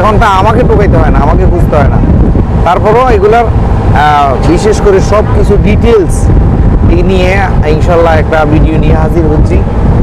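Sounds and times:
man talking: 0:00.0 - 0:09.7
boat engine rumble: 0:00.0 - 0:10.0
wind on microphone: 0:00.0 - 0:10.0.

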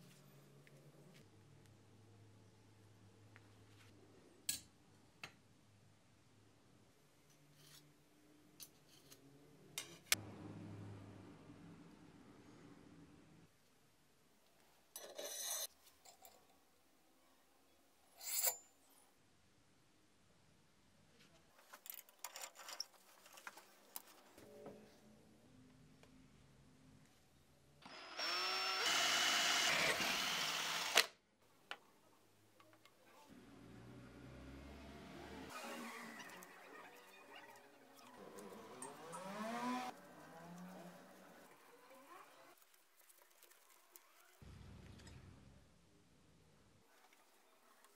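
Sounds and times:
metal rod scraping: 0:15.0 - 0:15.7
cordless drill motor whining: 0:27.9 - 0:31.1.

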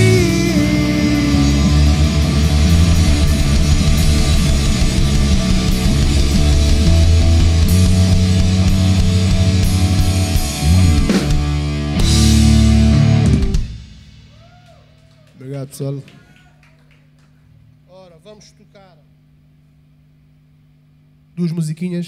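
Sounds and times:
distorted electric guitars: 0:00.0 - 0:14.4
bass guitar: 0:00.0 - 0:15.2
drum kit: 0:00.0 - 0:15.3.

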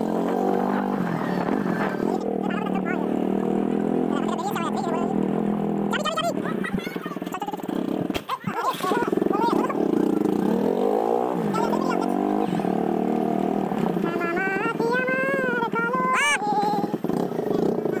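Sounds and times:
motorcycle engine running: 0:00.0 - 0:18.0
people's voices: 0:00.0 - 0:18.0.

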